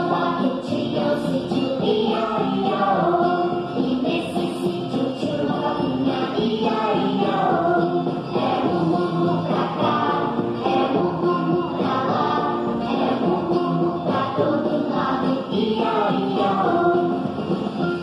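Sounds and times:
musical accompaniment: 0.0 - 18.0
voices singing children's song: 0.0 - 18.0.

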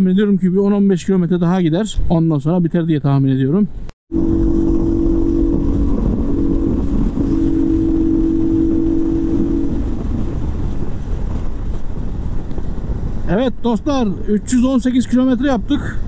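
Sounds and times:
wind and road noise: 0.1 - 16.0
motorcycle engine cruising: 4.1 - 11.9.

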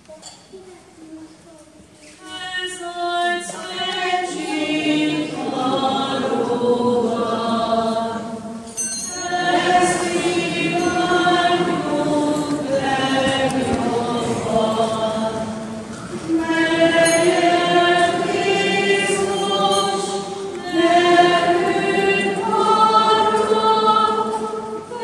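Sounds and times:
choir singing a hymn: 2.2 - 25.0.

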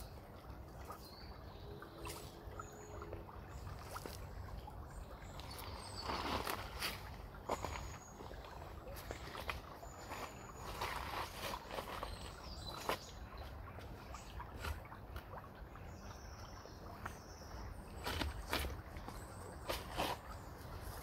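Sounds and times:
river water trickling and lapping: 0.0 - 21.0.

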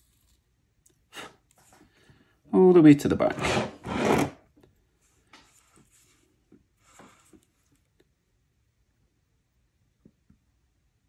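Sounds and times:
person speaking: 2.5 - 3.9.

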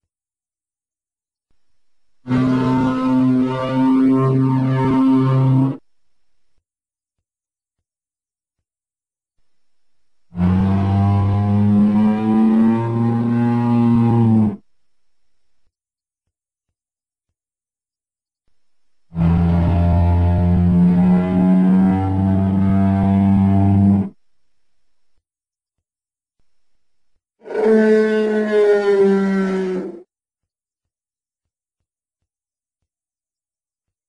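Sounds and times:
low dinosaur call: 10.3 - 14.6, 19.2 - 24.2, 27.4 - 30.1.

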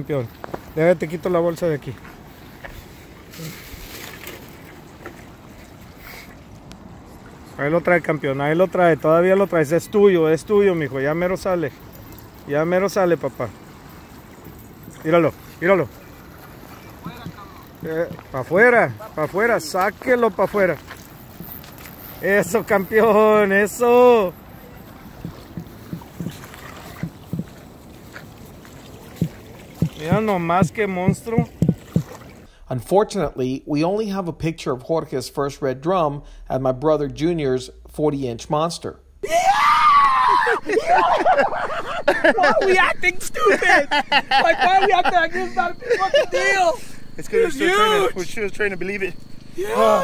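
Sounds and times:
water noise: 0.0 - 32.5
wind: 0.0 - 50.0
faint knocks: 25.2 - 27.6.

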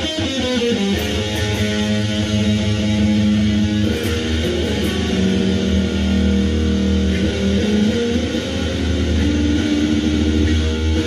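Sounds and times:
electric guitar long held notes: 0.0 - 11.0.

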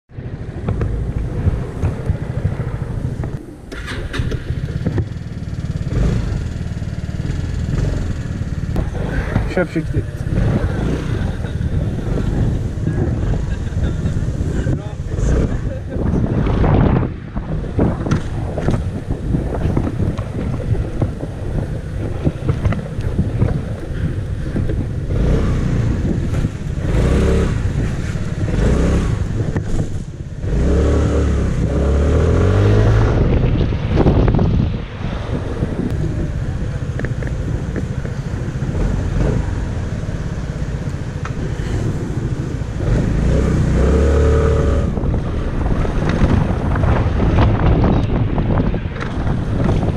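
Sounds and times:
wind noise on microphone: 0.1 - 49.9
scooter engine running: 0.4 - 14.5.

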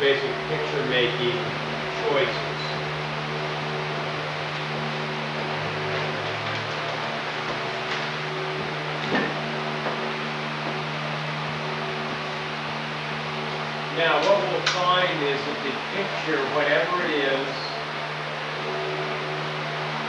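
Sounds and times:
low even hum: 0.0 - 20.0
steady recording hiss: 0.0 - 20.0.

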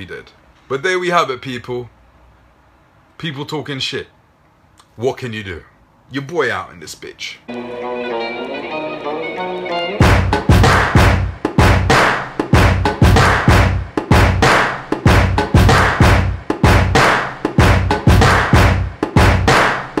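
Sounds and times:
loud music with heavy drum beat: 9.9 - 20.0.

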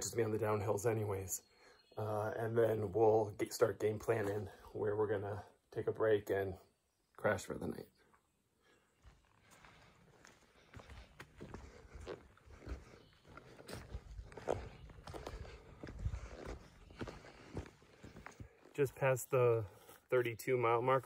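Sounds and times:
footsteps on forest trail: 8.6 - 20.6
handheld camera rumble: 9.1 - 18.8.

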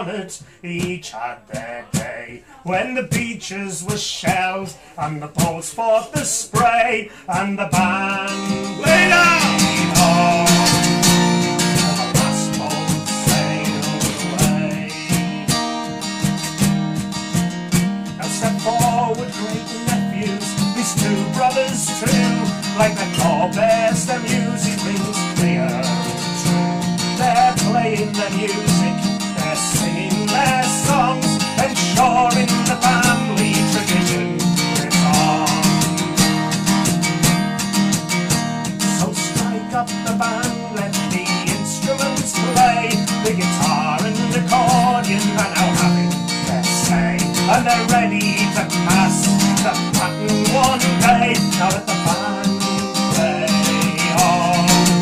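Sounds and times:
acoustic guitar playing: 0.0 - 55.0.

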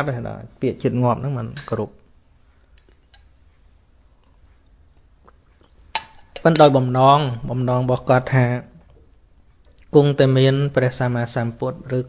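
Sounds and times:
man speaking: 0.0 - 2.1, 6.4 - 8.8, 9.9 - 12.0
hard object clinking: 5.9 - 6.8.

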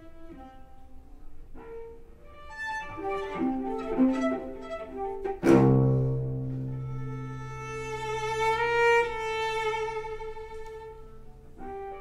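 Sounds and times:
bowed cello: 0.0 - 12.0.

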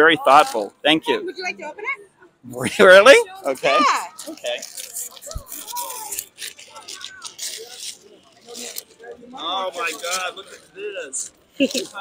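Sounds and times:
wrapping paper crinkling and tearing: 3.8 - 12.0.

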